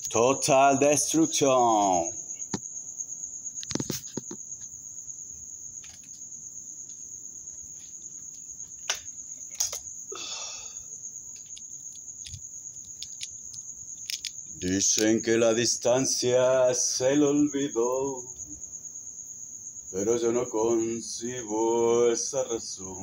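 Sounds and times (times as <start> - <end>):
insect trilling: 0.0 - 23.0
rustling: 11.3 - 15.2.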